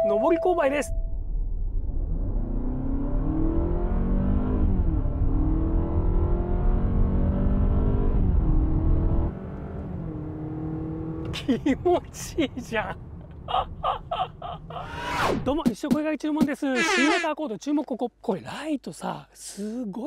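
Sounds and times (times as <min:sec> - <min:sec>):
car engine revving under full throttle: 0:01.8 - 0:11.4.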